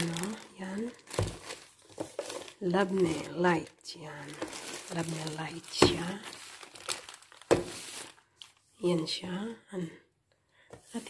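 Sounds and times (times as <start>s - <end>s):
plastic bags crinkling: 0.0s - 8.7s.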